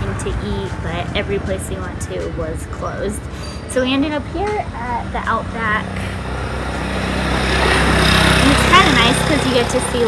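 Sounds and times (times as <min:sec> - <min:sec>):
vehicle passing by: 0:00.0 - 0:10.0.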